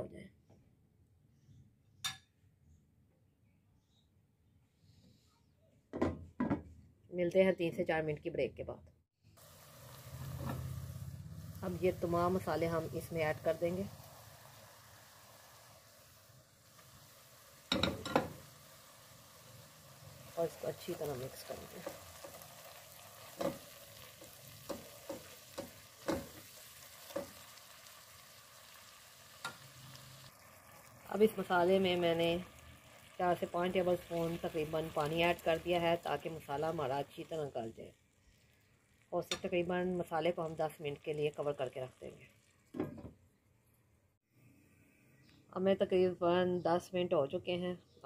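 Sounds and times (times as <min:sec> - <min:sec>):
masala sizzling in oil: 0:09.2 - 0:43.2.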